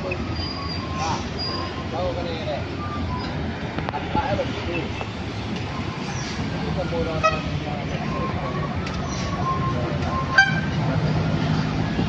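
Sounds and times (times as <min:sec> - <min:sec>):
heavy vehicle engines climbing: 0:00.0 - 0:12.0.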